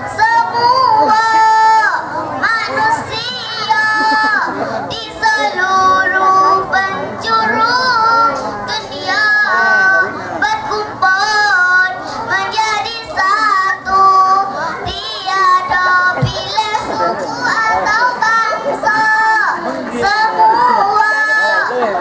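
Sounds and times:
girl singing into a microphone: 0.0 - 21.8
children singing together: 0.0 - 22.0.

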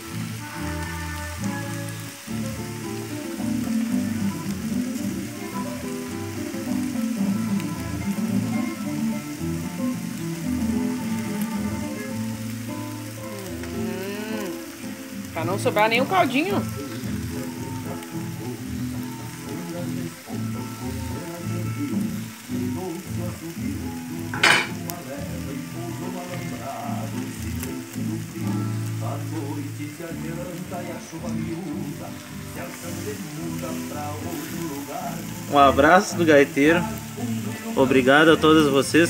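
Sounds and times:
food sizzling on a griddle: 0.0 - 39.0.

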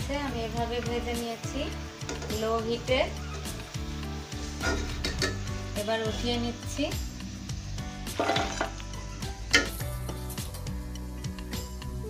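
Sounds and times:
frying sizzle: 0.0 - 12.0.

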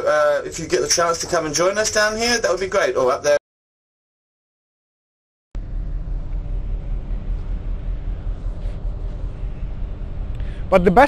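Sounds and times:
faint machinery hum: 0.0 - 3.4, 5.6 - 11.0
ship engines rumbling: 0.0 - 3.4, 5.6 - 11.0.

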